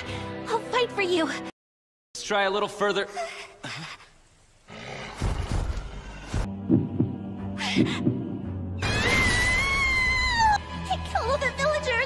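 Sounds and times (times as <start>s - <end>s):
heavy heartbeat thumps: 5.2s - 8.7s.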